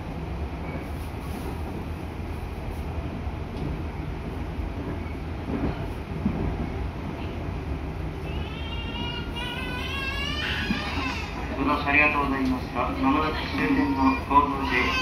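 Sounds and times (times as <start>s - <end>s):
train wheels rumbling on rail: 0.0s - 15.0s.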